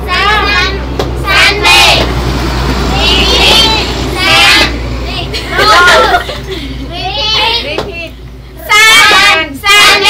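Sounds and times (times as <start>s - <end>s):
children speaking: 2.8s - 10.0s.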